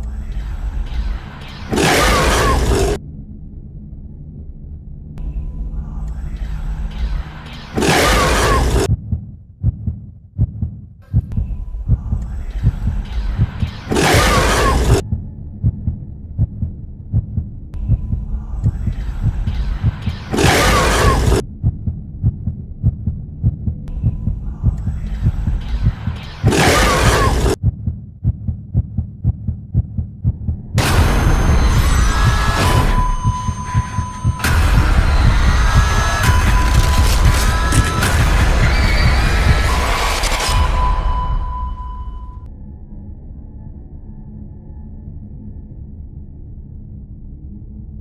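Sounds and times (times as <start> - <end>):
low drone: 0.0 - 8.9, 30.4 - 48.0
low hum: 0.0 - 48.0
low thumps: 8.8 - 13.8, 14.9 - 40.0
short low uneven pulses: 14.6 - 40.0.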